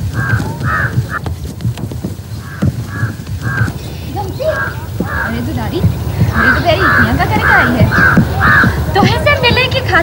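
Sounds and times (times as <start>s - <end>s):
crows cawing: 0.0s - 1.2s, 2.3s - 9.2s.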